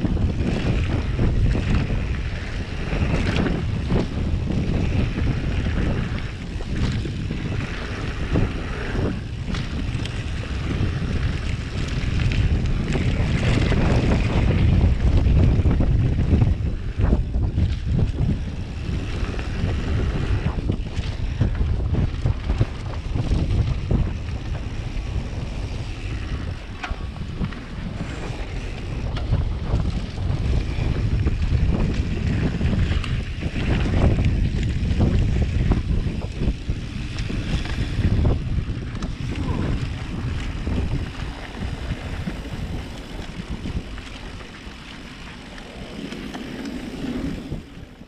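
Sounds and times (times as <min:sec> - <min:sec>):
bike rattling over bumps: 0:00.0 - 0:48.0
tyres rumbling over dirt trail: 0:00.0 - 0:48.0
wind buffeting microphone: 0:00.0 - 0:48.0.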